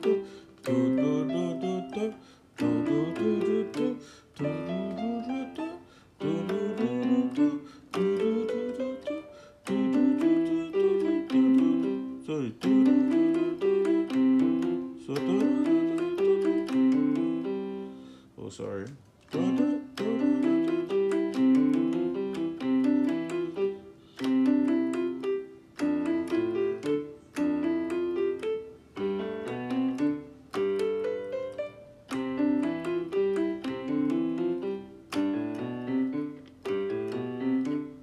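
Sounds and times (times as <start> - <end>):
piano keyboard runs: 0.0 - 17.9, 19.2 - 38.0.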